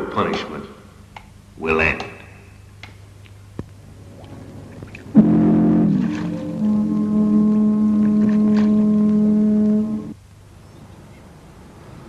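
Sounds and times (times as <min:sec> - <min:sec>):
loud low horn blast: 0:05.2 - 0:10.2.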